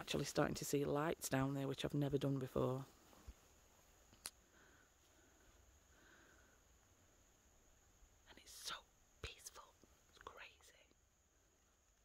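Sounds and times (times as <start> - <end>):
faint steady hiss: 0.0 - 12.0
faint whispering: 8.2 - 11.0.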